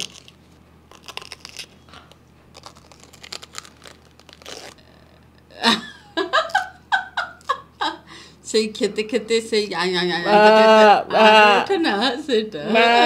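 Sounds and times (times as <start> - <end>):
crunching and chewing cabbage: 0.0 - 5.2
person laughing: 5.5 - 8.1, 10.2 - 11.8, 12.6 - 13.0.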